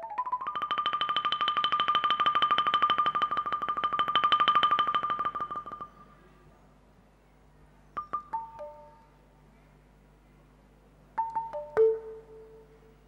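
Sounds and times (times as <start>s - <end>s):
bamboo xylophone tremolo roll: 0.0s - 6.3s, 8.0s - 9.2s, 11.2s - 13.0s.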